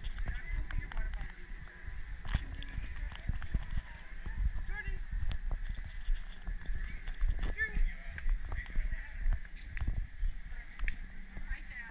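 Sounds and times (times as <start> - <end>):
footsteps on stone path: 0.0 - 11.9
camera jostling: 2.2 - 4.0
people chattering: 6.4 - 11.9.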